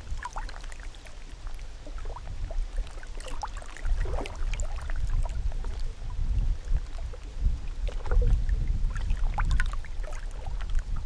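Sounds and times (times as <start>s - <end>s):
gusting low rumble: 3.9s - 11.0s.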